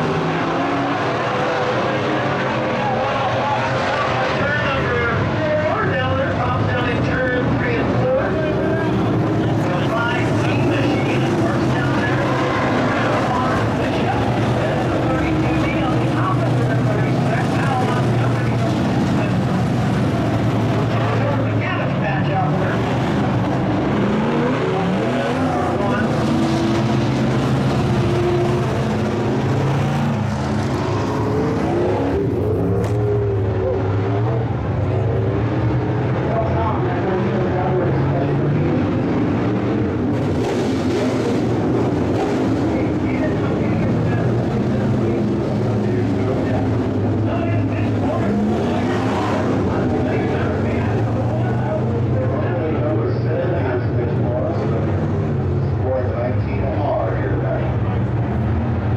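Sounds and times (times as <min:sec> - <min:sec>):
race car engines droning: 0:00.0 - 0:58.9.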